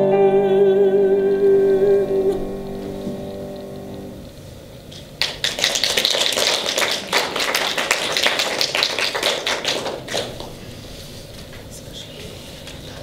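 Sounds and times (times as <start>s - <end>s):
piano notes: 0.0s - 4.8s
audience applause: 5.2s - 10.9s.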